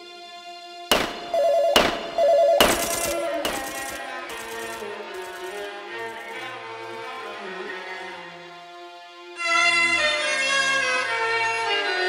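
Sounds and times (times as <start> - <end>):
hard drum hits: 0.9 - 3.8.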